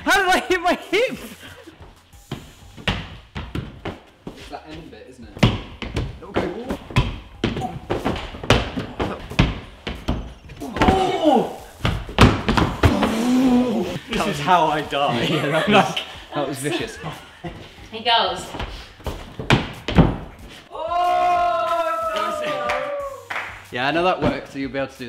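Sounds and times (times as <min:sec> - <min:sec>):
thuds and slaps of climbers: 0:05.4 - 0:11.2, 0:11.8 - 0:13.2, 0:18.6 - 0:20.6
laughter: 0:15.1 - 0:16.0, 0:16.6 - 0:17.7.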